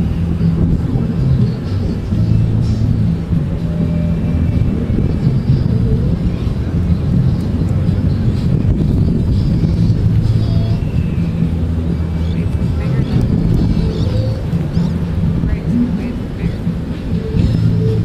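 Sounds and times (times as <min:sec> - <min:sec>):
faint indistinct voices: 0:00.0 - 0:18.0
wind rumble on microphone: 0:00.0 - 0:18.0.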